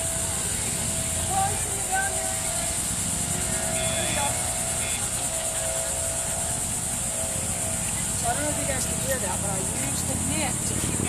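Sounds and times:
faint hum: 0:00.0 - 0:11.0.

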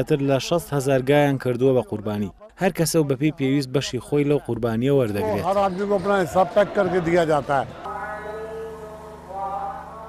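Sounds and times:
chanting with held notes: 0:05.2 - 0:10.0.

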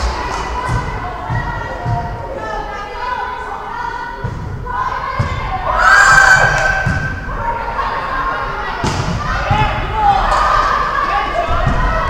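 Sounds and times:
loud shout: 0:00.0 - 0:12.0.

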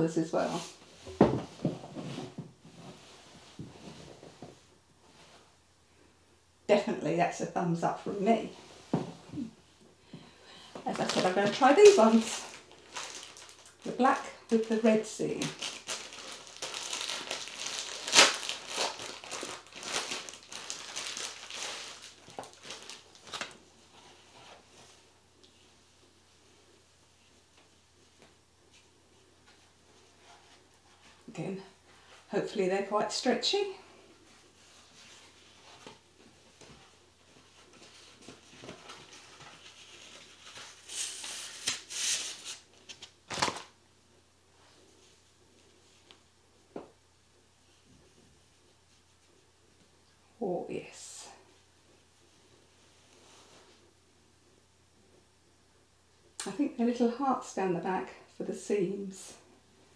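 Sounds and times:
plastic packet crinkling: 0:10.9 - 0:23.6.

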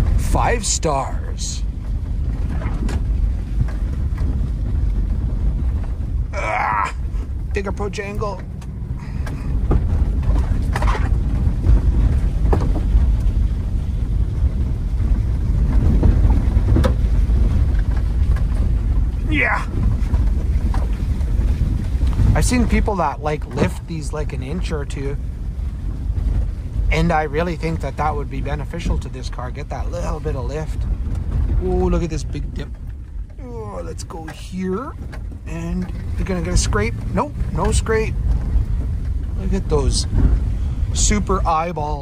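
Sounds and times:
car driving on dirt road: 0:00.0 - 0:42.0.

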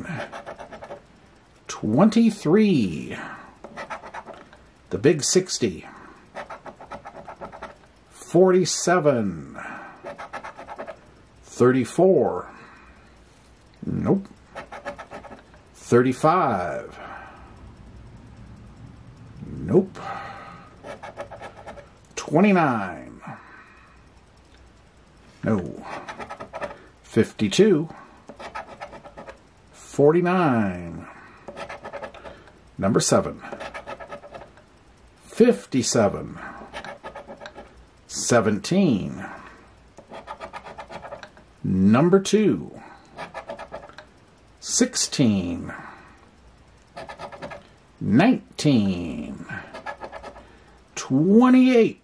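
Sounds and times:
coin scraping scratch card: 0:00.0 - 0:01.0, 0:03.6 - 0:04.6, 0:06.3 - 0:07.9, 0:10.0 - 0:11.0, 0:14.5 - 0:15.5, 0:20.8 - 0:21.9, 0:25.5 - 0:26.8, 0:28.3 - 0:29.4, 0:31.5 - 0:32.4, 0:33.1 - 0:34.6, 0:36.6 - 0:37.8, 0:40.0 - 0:41.4, 0:43.1 - 0:44.0, 0:46.9 - 0:47.7, 0:49.6 - 0:50.4.

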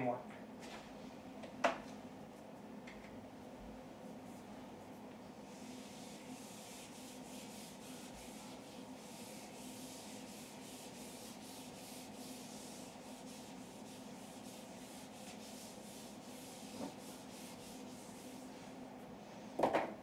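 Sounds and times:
steady low hum: 0:00.0 - 0:20.0
eraser wiping whiteboard: 0:04.0 - 0:18.8.

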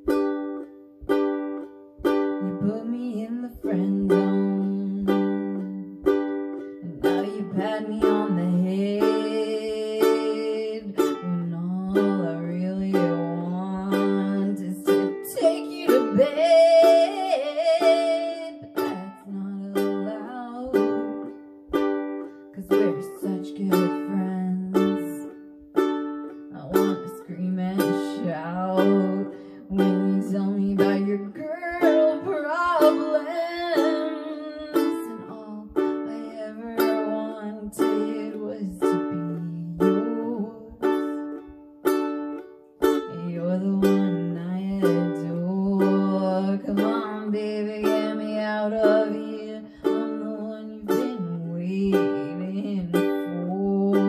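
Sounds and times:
ukulele strumming: 0:00.0 - 0:54.0
woman singing: 0:02.0 - 0:41.6, 0:42.8 - 0:54.0.

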